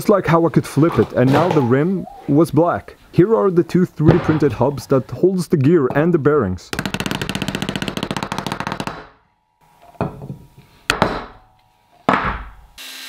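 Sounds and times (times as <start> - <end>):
heavy knocks: 12.1 - 12.7.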